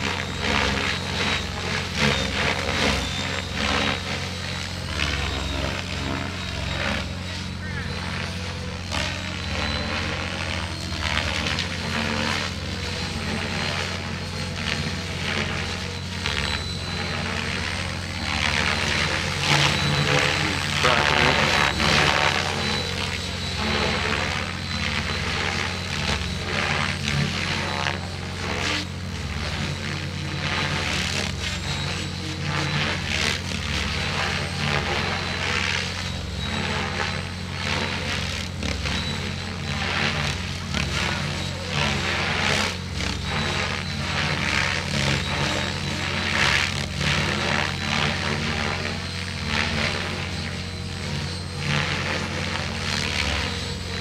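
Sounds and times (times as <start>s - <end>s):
model helicopter rotor and motor: 0.0s - 54.0s.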